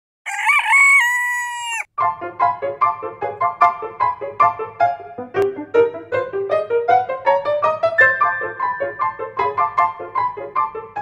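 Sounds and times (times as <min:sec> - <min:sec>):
rooster crowing: 0:00.2 - 0:01.9.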